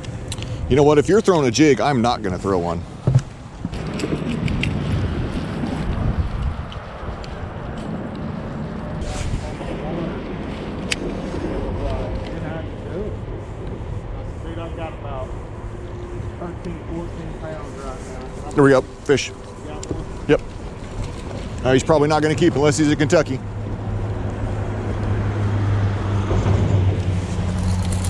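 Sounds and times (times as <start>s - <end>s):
wind rumbling on microphone: 0.0s - 28.0s.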